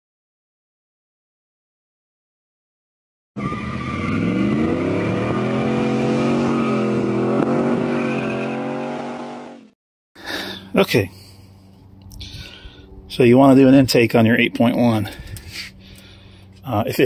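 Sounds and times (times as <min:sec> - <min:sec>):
truck engine accelerating: 0:03.4 - 0:09.8.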